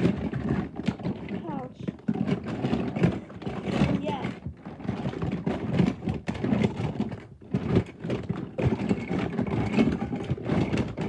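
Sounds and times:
handling rustling and clattering: 0.0 - 11.0
small knocks: 0.0 - 11.0.

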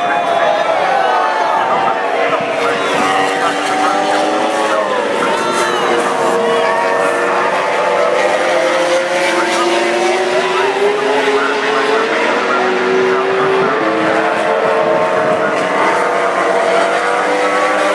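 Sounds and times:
race motorcycle engines passing: 0.0 - 17.9.

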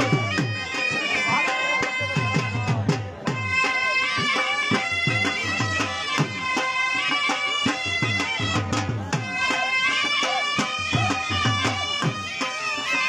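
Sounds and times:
dhol drum beating: 0.0 - 13.0
loud reed wind instrument melody: 0.0 - 13.0.

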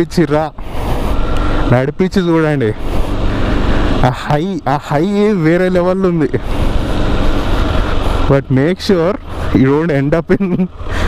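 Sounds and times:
motorcycle engine running: 0.0 - 11.0
man's voice: 4.0 - 6.4, 8.3 - 10.7.

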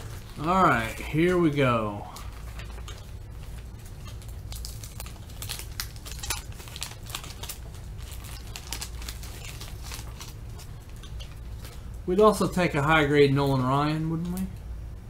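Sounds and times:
wax paper wrapper crinkling: 0.0 - 14.5
steady low hum: 0.0 - 15.0.

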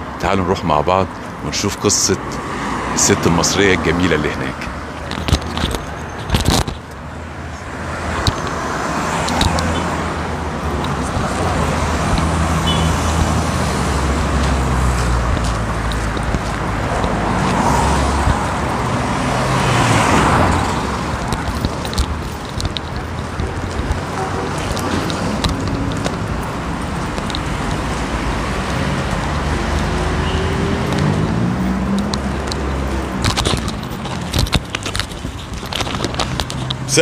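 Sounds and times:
street traffic rumble: 0.0 - 37.0
vehicle passing: 2.0 - 5.7, 6.9 - 37.0.

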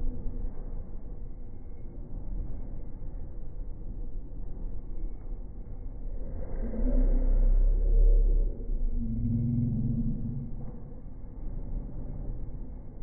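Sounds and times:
slowed train rumble: 0.0 - 13.0.

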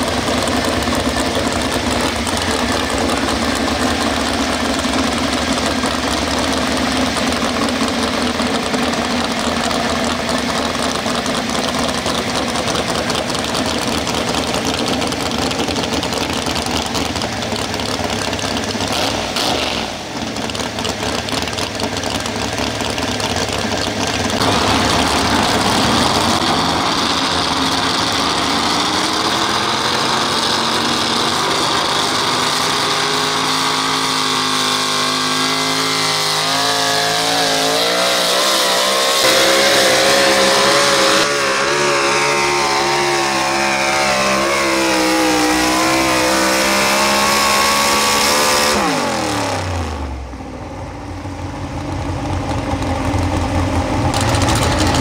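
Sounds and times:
truck engine idling and revving: 0.0 - 55.0.

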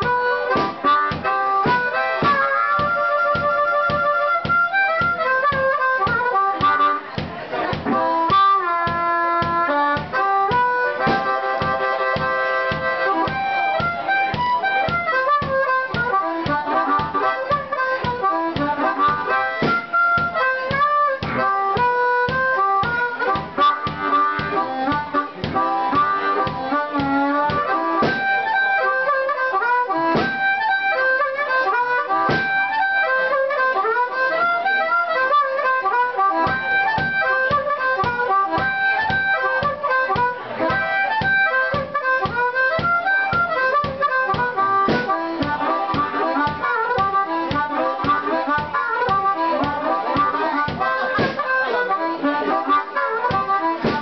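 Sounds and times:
bass drum beat: 0.0 - 33.6, 35.4 - 52.0, 52.6 - 54.0
amplified harmonica wailing: 0.0 - 54.0.

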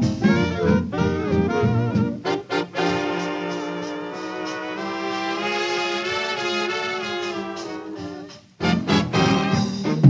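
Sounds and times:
brass holding long chords: 0.0 - 10.0
swing big band playing: 0.0 - 10.0.

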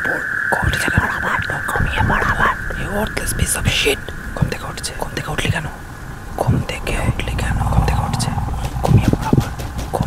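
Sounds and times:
layered whispering voices: 0.0 - 10.0
low rumble: 1.6 - 10.0.

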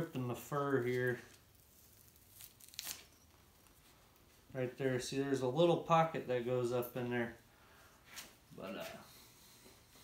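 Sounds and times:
hide tearing rasps: 0.8 - 4.3.

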